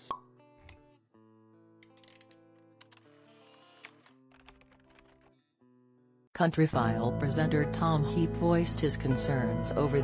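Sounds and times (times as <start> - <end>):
soft background music: 6.5 - 10.0.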